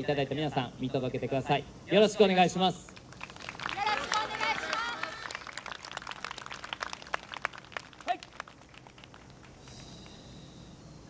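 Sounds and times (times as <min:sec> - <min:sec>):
crowd clapping: 0:02.9 - 0:09.9
voices calling out together: 0:03.7 - 0:05.4.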